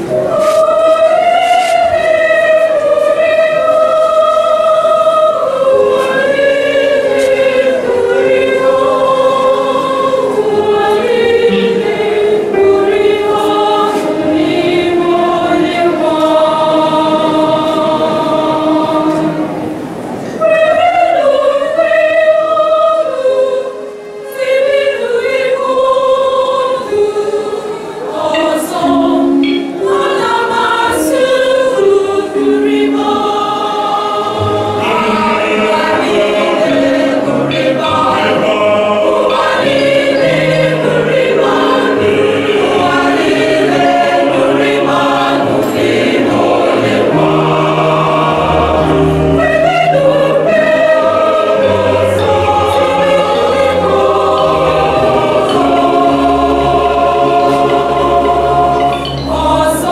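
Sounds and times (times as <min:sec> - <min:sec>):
choir singing in parts: 0:00.0 - 0:59.9.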